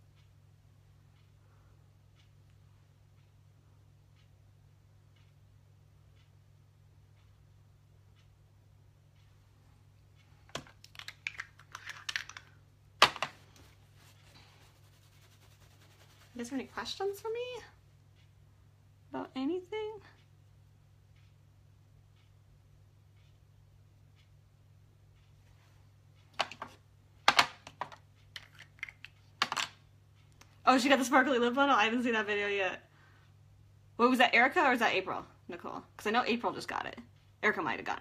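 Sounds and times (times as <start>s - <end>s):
small objects clicking on tabletop: 10.5s - 13.4s, 26.4s - 29.8s.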